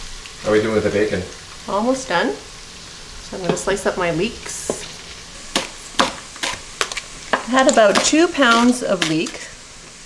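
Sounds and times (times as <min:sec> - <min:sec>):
knife chopping on wooden board: 0:05.5 - 0:07.0.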